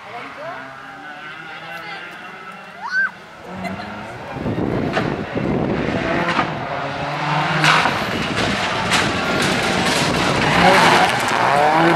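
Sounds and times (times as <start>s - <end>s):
rally car engine revving: 0.1s - 11.9s.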